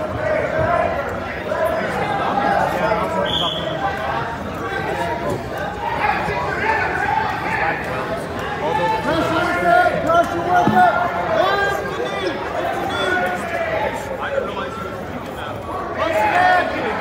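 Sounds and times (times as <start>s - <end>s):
voices calling out in a gym: 0.0s - 17.0s.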